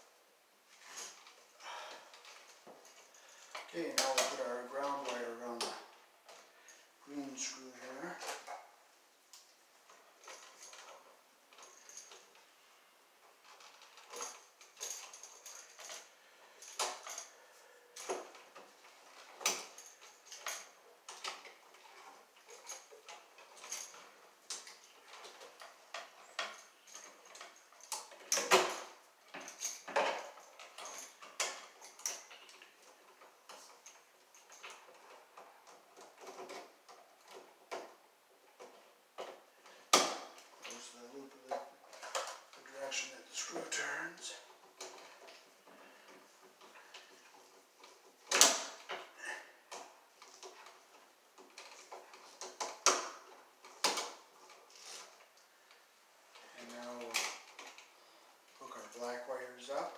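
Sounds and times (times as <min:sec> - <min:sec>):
hand tools clicking and scraping: 0:00.7 - 0:08.7, 0:13.2 - 0:59.9.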